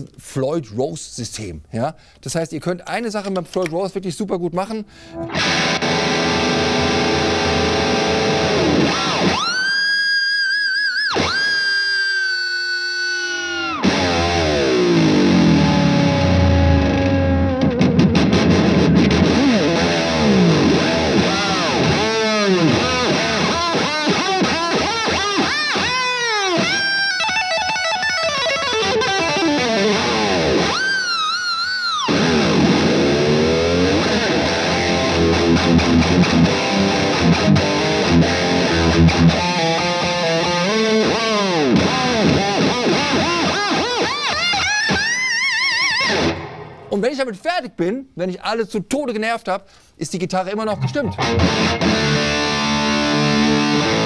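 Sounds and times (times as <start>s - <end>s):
distorted electric guitar whammy dives: 5.0s - 46.9s, 50.7s - 54.0s.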